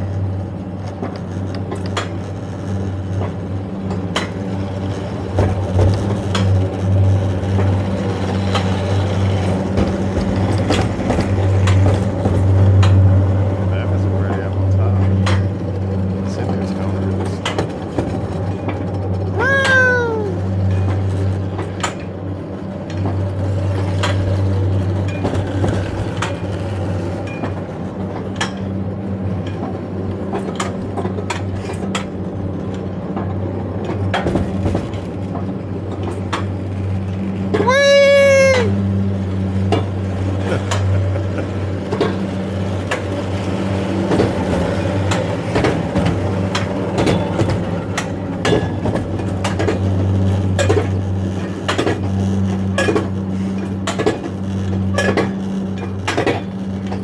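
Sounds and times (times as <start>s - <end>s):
sled rumbling on steel rail: 0.0s - 57.0s.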